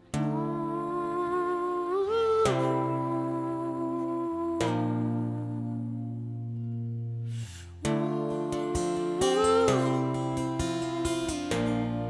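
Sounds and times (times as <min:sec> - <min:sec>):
electric guitars playing: 0:00.0 - 0:12.0
guitar chords struck: 0:00.0 - 0:12.0.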